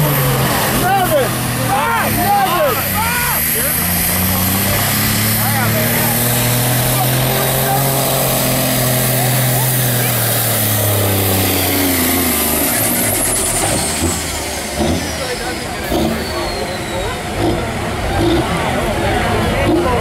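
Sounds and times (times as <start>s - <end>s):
diesel engine under load: 0.0s - 20.0s.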